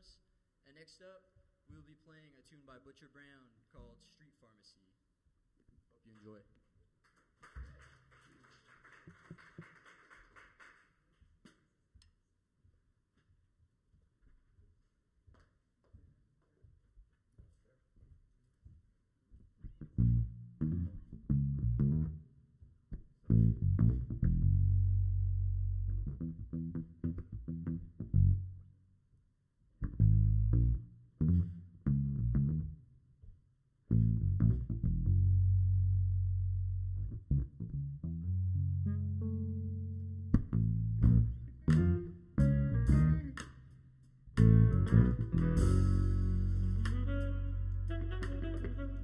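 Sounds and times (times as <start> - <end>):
funky electric bass riff: 19.8 - 22.2, 23.3 - 28.6, 29.8 - 32.8, 33.9 - 43.5, 44.4 - 49.0
drums: 44.4 - 47.4
band with horns: 45.6 - 49.0.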